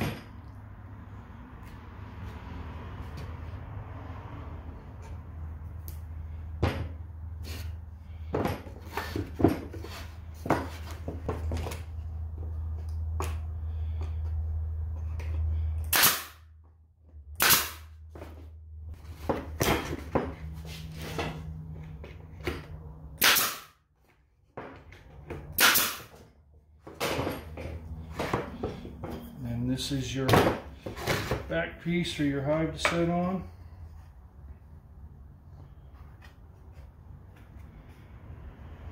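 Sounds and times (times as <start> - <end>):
pneumatic staple gun firing: 15.9 - 16.4, 17.4 - 17.9, 23.2 - 23.8, 25.6 - 26.1.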